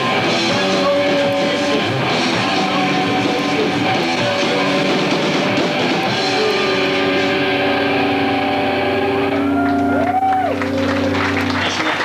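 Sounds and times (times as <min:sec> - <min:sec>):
electric guitars ringing chord: 0:00.0 - 0:12.0
low amp hum: 0:00.0 - 0:12.0.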